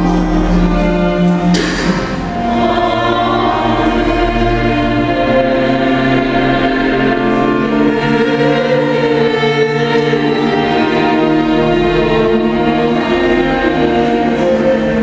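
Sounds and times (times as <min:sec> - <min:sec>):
small choir singing: 0:00.0 - 0:15.0
string ensemble: 0:00.0 - 0:15.0.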